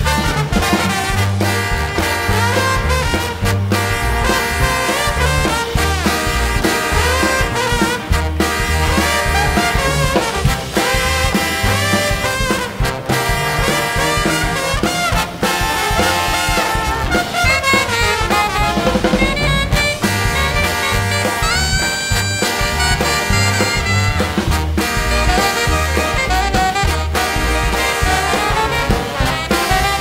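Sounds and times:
big band swing music: 0.0 - 30.0
trombone: 0.0 - 30.0.

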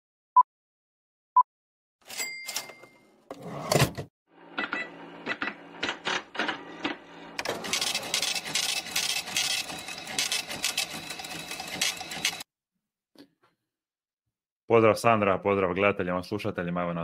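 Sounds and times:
fast mechanical clatter: 7.4 - 12.4.

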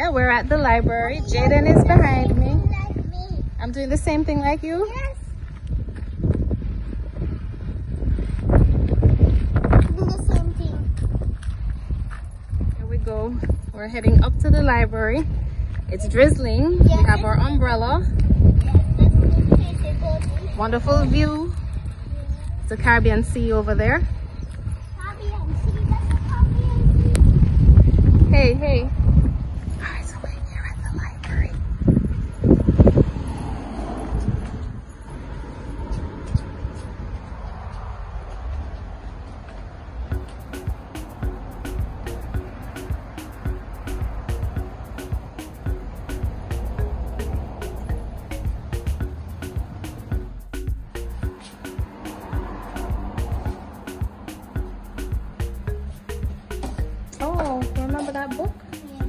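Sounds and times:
wind buffeting microphone: 0.0 - 59.0
low thumps: 40.1 - 58.7.

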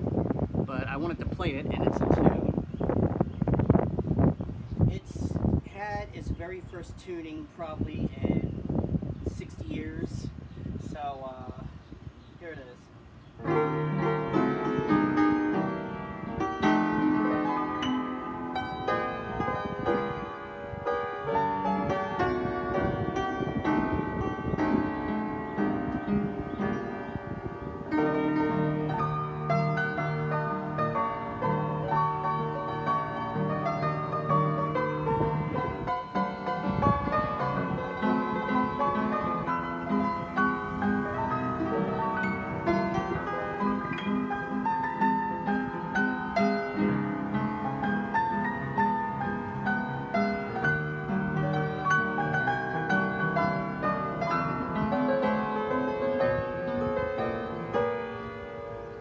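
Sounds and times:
out of tune piano playing: 13.3 - 59.0.

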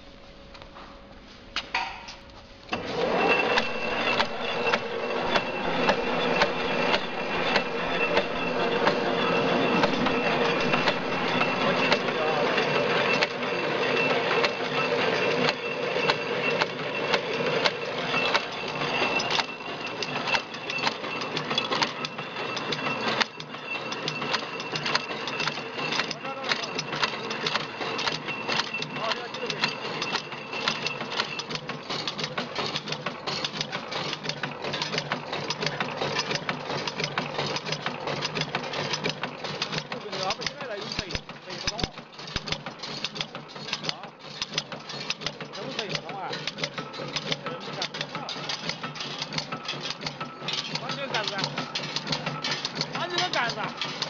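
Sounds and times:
high steady whine: 0.0 - 30.7
motor hum: 2.7 - 40.8
mechanical clatter: 2.7 - 54.0.

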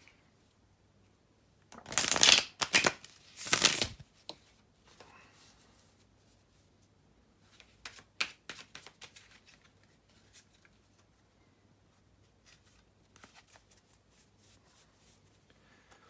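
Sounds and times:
cards being shuffled: 1.8 - 4.4, 7.5 - 11.1, 12.4 - 14.6.

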